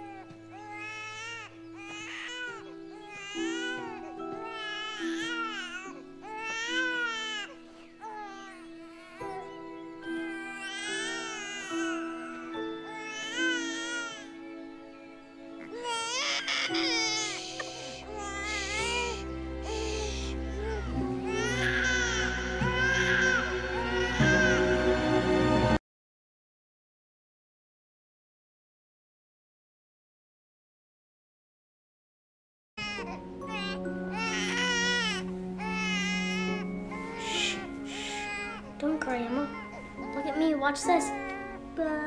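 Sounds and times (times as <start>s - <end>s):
infant crying: 0.0s - 14.3s, 15.6s - 24.8s, 32.8s - 42.0s
background music sustained notes: 0.0s - 25.8s, 32.8s - 42.0s.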